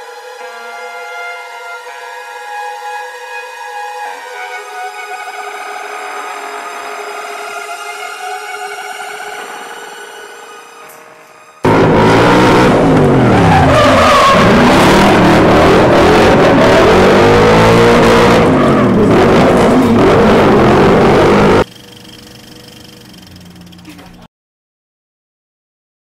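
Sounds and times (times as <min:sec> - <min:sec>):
car engine revving: 0:11.6 - 0:23.6
tyres squealing: 0:11.7 - 0:21.7.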